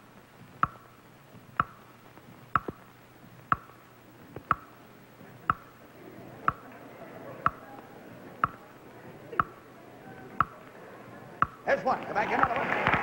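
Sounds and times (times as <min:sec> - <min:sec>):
clock ticking: 0:00.0 - 0:05.8, 0:06.4 - 0:06.8, 0:07.4 - 0:07.8, 0:08.4 - 0:08.8, 0:09.4 - 0:09.6, 0:10.4 - 0:10.7, 0:11.4 - 0:11.7.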